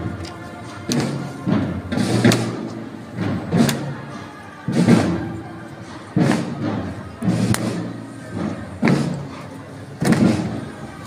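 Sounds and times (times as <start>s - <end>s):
marching band low notes: 0.0s - 11.0s.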